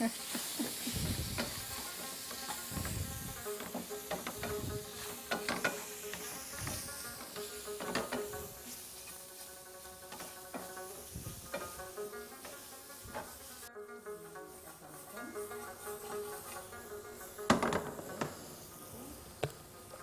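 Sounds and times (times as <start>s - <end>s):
chicken sizzling in a frying pan: 0.0s - 13.7s, 14.3s - 20.0s
spatula scraping a pan: 0.1s - 13.7s, 14.3s - 18.9s.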